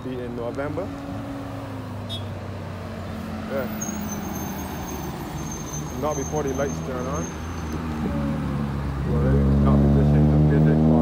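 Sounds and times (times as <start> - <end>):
road traffic hum: 0.0 - 11.0
bus diesel engine driving past: 0.2 - 11.0.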